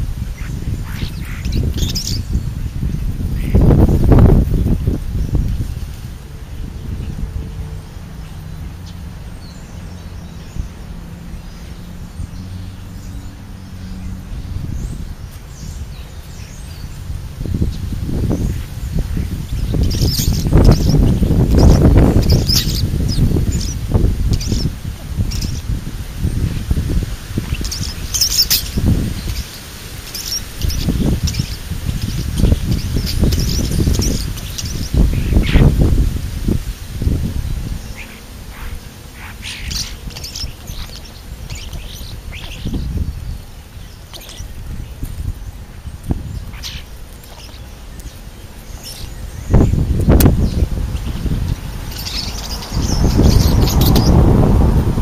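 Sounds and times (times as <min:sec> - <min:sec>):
songbirds chirping: 0:00.0 - 0:55.0.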